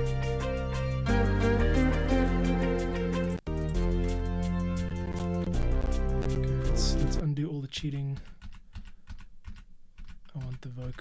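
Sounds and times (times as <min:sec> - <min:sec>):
music playback: 0:00.0 - 0:07.3
computer keyboard clicking: 0:07.8 - 0:11.0.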